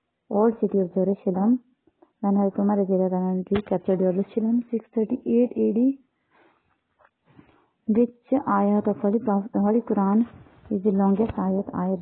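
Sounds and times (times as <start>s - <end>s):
woman reading aloud: 0.3s - 1.6s, 2.2s - 6.0s, 7.9s - 12.0s.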